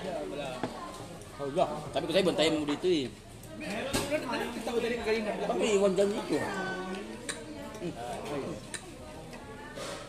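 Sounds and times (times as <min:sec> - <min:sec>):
diners' voices: 0:00.0 - 0:10.0.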